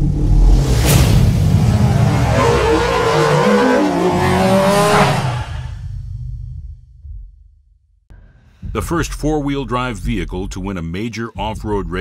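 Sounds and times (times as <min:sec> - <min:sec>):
engine-like revving tones: 0:00.0 - 0:05.8.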